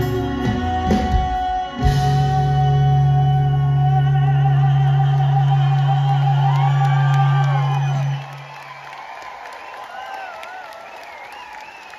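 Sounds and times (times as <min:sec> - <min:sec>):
audience whoops and cheers: 0:00.8 - 0:11.9.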